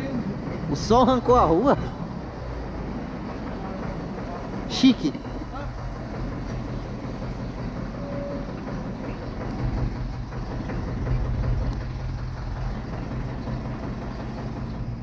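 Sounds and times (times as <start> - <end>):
tractor diesel engine running: 0.0 - 15.0.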